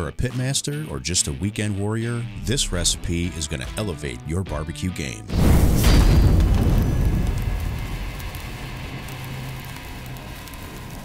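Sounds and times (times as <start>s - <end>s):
low rumble: 2.4s - 3.6s, 5.3s - 11.0s
boom: 5.3s - 11.0s
fire crackling hiss: 5.3s - 11.0s.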